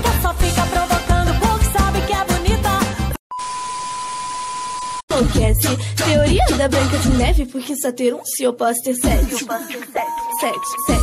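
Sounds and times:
song playing: 0:00.0 - 0:03.2, 0:10.0 - 0:11.0
high-pitched beep tone: 0:03.3 - 0:05.0.

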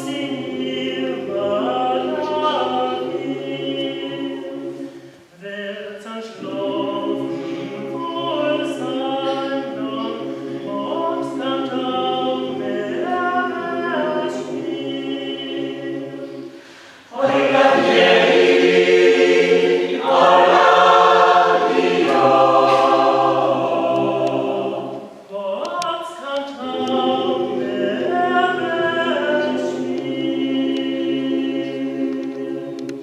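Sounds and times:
mixed choir singing a cappella: 0:00.0 - 0:33.0.

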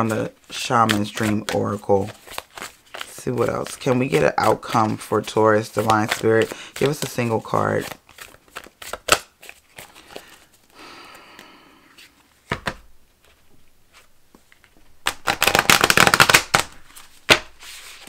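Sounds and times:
cards being shuffled: 0:00.0 - 0:10.7, 0:11.4 - 0:18.0.

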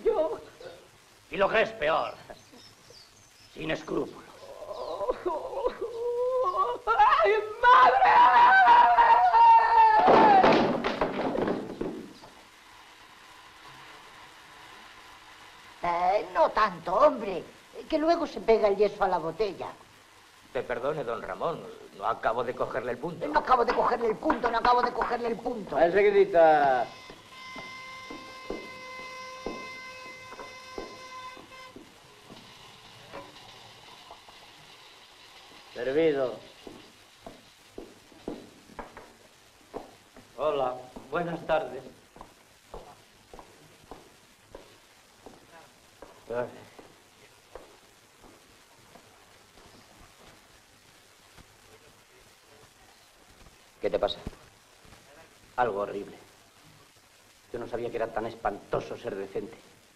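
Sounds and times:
man wailing and sobbing: 0:04.5 - 0:10.5
steady high tone: 0:26.6 - 0:32.4.

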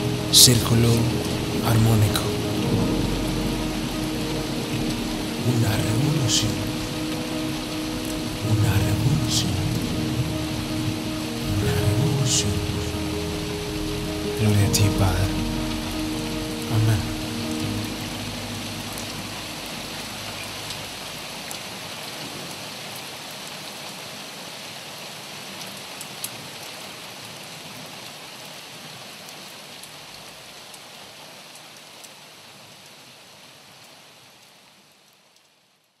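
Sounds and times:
steady rain hissing: 0:00.0 - 0:36.0.

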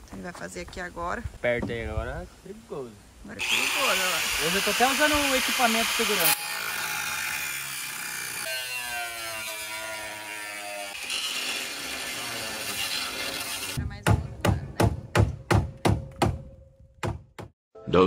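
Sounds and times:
angle grinder cutting steel: 0:03.4 - 0:13.8.

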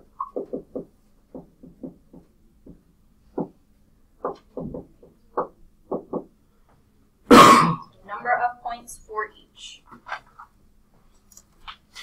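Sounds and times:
person coughing: 0:07.3 - 0:07.9.

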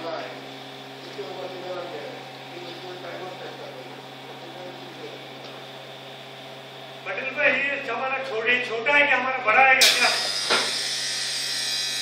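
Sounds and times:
blower high whine with air hiss: 0:00.0 - 0:12.0.

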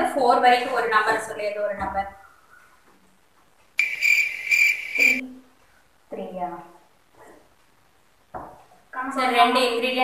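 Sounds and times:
loud high-pitched trill: 0:03.8 - 0:05.2.

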